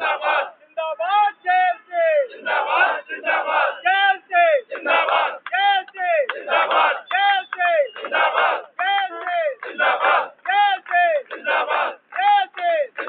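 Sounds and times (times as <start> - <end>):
crowd chanting slogans: 0.0 - 13.0.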